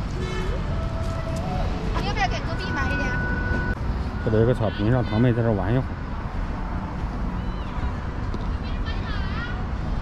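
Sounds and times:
street traffic rumble: 0.0s - 10.0s.

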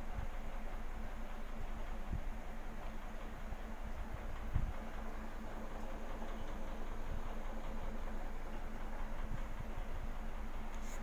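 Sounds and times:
aquarium air pump humming: 0.0s - 11.0s.

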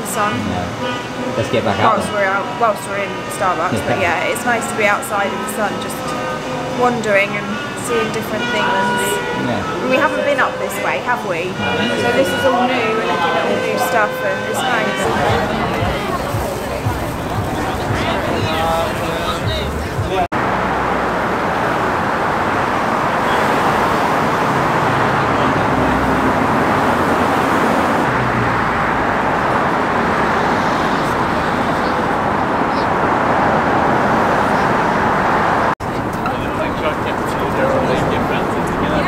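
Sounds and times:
crowd voices: 0.0s - 20.3s, 35.6s - 39.0s
road traffic noise: 0.0s - 39.0s.

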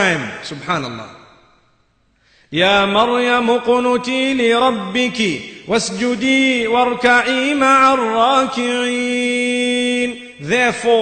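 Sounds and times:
man chanting melodic recitation: 0.0s - 1.2s, 2.5s - 11.0s.

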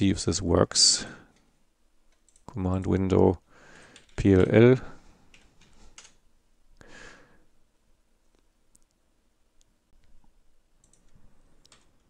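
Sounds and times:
soft breath: 3.5s - 4.2s, 6.8s - 7.6s.

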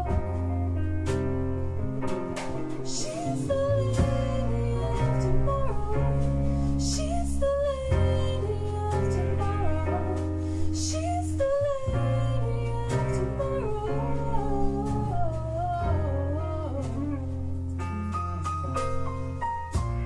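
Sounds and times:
bass notes: 0.0s - 20.0s
bending lead melody: 0.0s - 20.0s
keyboard: 0.0s - 20.0s.

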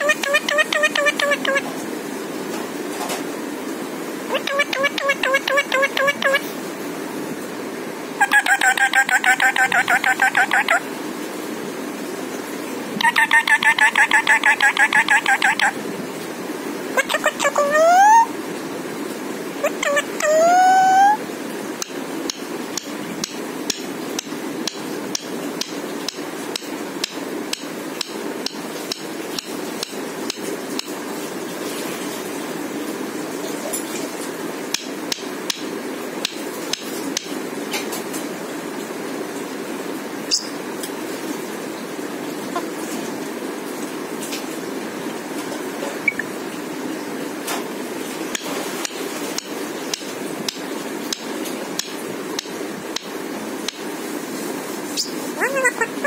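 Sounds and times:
steady background hum: 0.0s - 56.0s
steady background noise: 0.0s - 56.0s.

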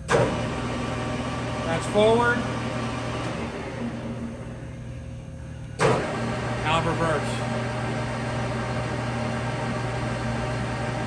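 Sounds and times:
lathe humming: 0.1s - 11.0s.

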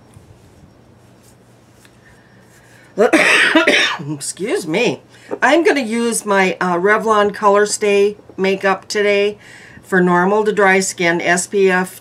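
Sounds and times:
woman coughing: 3.0s - 4.2s.

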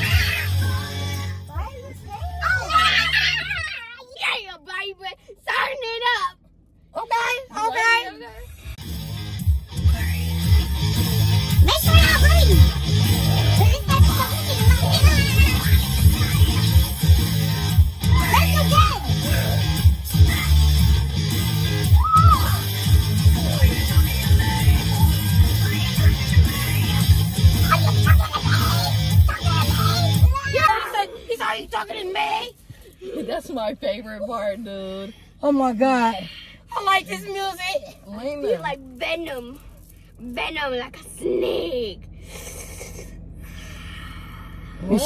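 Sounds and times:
heavy rock music: 0.0s - 2.2s, 8.8s - 30.7s.

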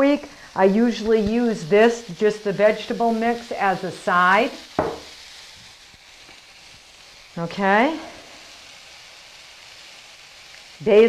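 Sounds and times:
vegetables sizzling in wok: 0.0s - 11.0s.

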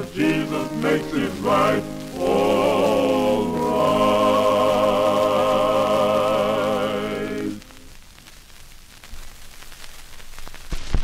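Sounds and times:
vocal group with piano: 0.0s - 7.7s
record hiss and crackle: 0.0s - 11.0s.

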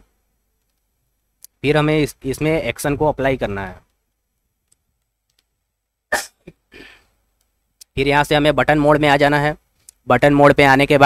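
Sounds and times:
person sneezing or coughing: 6.1s - 7.1s
quiet breath: 6.7s - 7.2s.

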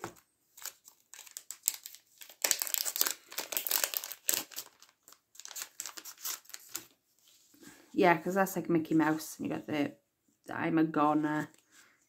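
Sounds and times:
plastic bag crinkling: 0.0s - 7.0s
paper rustling: 0.0s - 7.6s.

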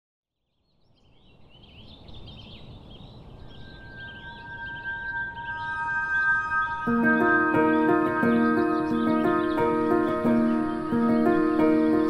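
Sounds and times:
birds chirping: 0.5s - 12.0s
soft sustained music chord: 3.4s - 12.0s.

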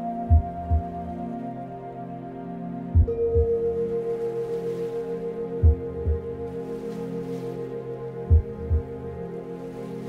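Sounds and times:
singing bowl tone: 0.0s - 10.0s
low heartbeat-like thump: 0.3s - 1.0s, 3.0s - 3.8s, 5.6s - 6.4s, 8.3s - 9.2s.

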